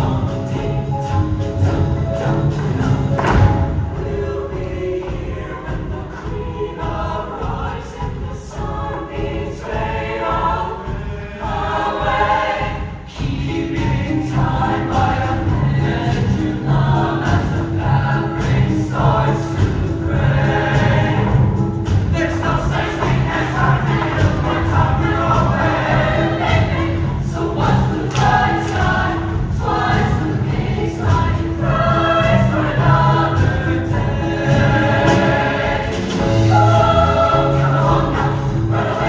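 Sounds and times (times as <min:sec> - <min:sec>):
choir singing: 0:00.0 - 0:39.0
upbeat instrumental music: 0:00.0 - 0:39.0.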